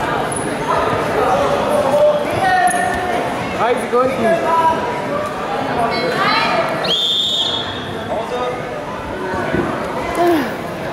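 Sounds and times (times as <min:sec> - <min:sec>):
voices in a hall: 0:00.0 - 0:10.9.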